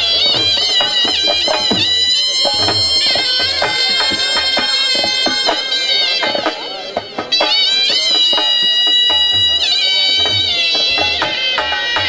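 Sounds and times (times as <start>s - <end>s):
dhol drum strikes: 0.0s - 12.0s
harmonium drone: 0.0s - 12.0s
high bending melody line: 0.0s - 12.0s.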